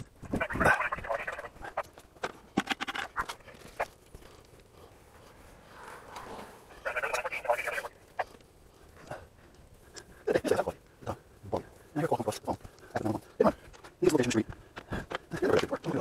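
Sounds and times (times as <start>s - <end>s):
muffled talking: 6.8s - 8.0s.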